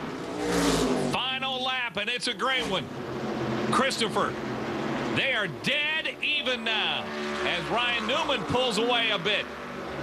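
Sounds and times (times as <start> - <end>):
race car engines at full throttle: 0.0 - 10.0
commentator speaking: 1.2 - 2.9, 3.7 - 4.4, 5.1 - 9.6.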